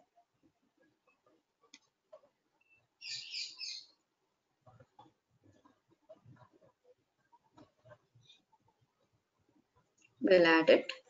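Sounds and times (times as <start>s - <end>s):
high-pitched chirping: 2.6s - 4.0s.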